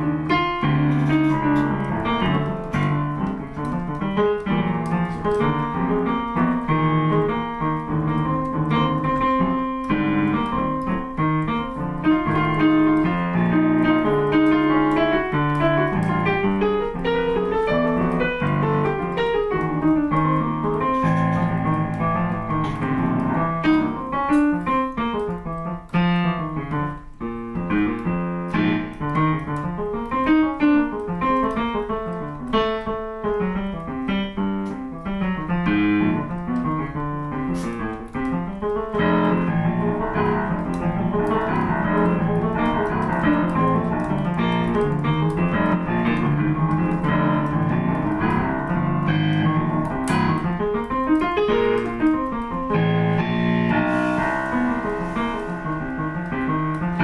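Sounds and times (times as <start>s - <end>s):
boogie-woogie piano playing: 0.0s - 57.0s.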